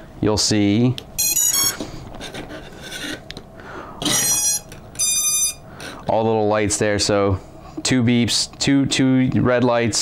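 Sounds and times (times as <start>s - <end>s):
short high electronic beeps: 1.2s - 1.8s, 4.1s - 5.6s.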